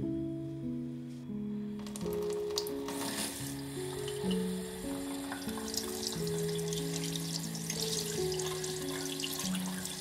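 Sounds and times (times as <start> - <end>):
soft background music: 0.0 - 10.0
tap water running into sink: 1.8 - 10.0.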